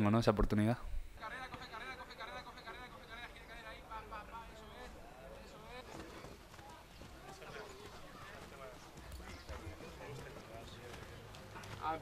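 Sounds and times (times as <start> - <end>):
footfalls jogging on turf: 5.6 - 12.0.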